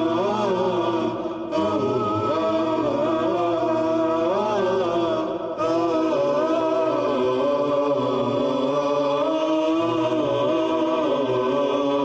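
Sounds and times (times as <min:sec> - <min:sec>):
unaccompanied vocal chant: 0:00.0 - 0:12.0.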